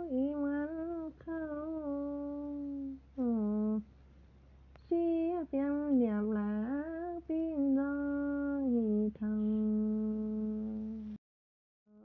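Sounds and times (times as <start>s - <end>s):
woman singing unaccompanied: 0.0s - 3.9s, 4.8s - 11.2s.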